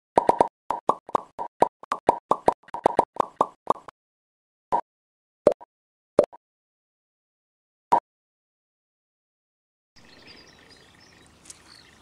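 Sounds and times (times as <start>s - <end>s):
cartoon pop sound effects: 0.2s - 1.3s.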